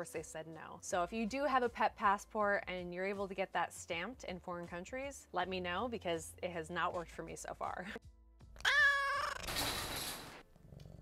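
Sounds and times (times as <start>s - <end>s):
cat meowing: 8.6s - 9.5s.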